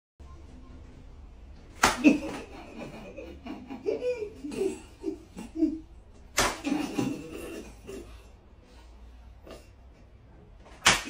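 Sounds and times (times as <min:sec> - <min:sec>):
faint room hum: 0:00.2 - 0:11.0.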